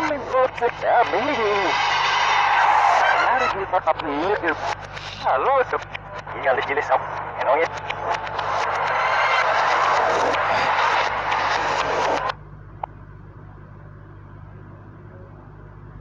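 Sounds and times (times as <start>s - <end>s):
loud rushing noise: 0.0s - 4.9s, 6.2s - 12.4s
low steady hum: 2.7s - 16.0s.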